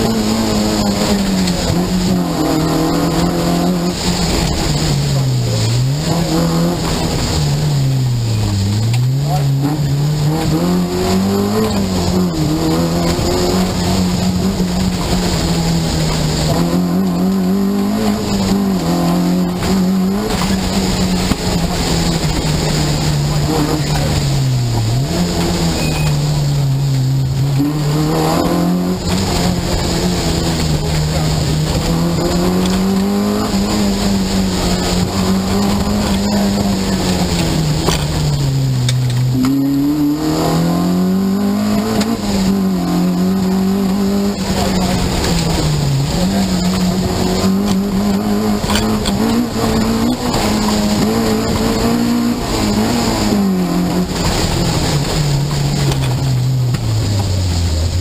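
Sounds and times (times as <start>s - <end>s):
rally car engine driven hard: 0.0s - 58.0s.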